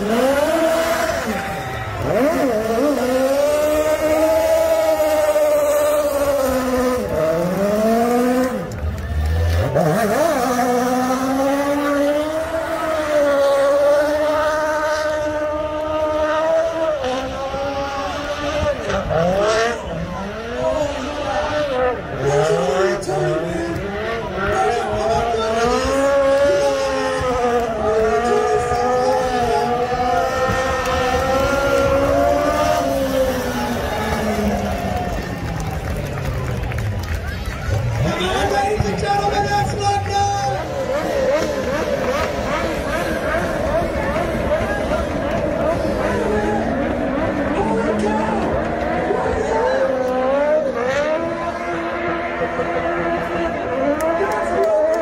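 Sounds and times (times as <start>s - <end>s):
car engine at high revs: 0.0s - 55.0s.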